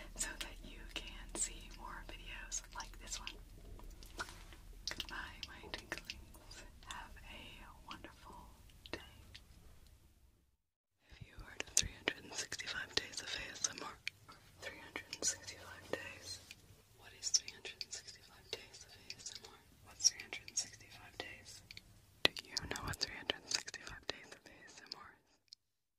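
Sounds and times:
person whispering: 0:00.0 - 0:03.4, 0:04.2 - 0:09.3, 0:11.1 - 0:14.0, 0:14.6 - 0:21.7, 0:22.3 - 0:25.2
small sharp mouth clicks: 0:02.6 - 0:06.2.

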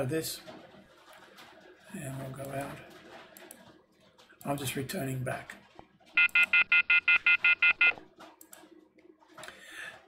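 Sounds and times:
short electronic beeps: 0:06.2 - 0:08.0.

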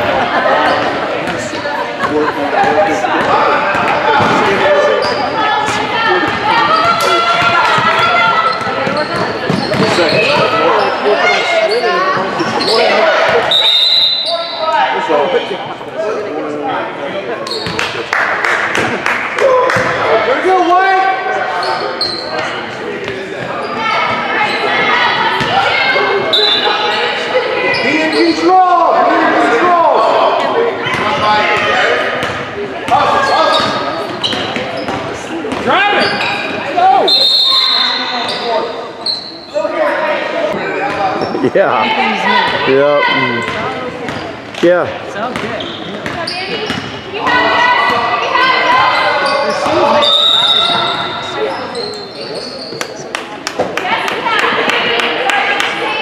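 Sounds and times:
spectators calling out: 0:00.0 - 0:16.3, 0:32.9 - 0:44.4, 0:45.1 - 0:53.0
high whistle tones: 0:13.5 - 0:14.6, 0:37.0 - 0:38.4, 0:49.8 - 0:51.1.

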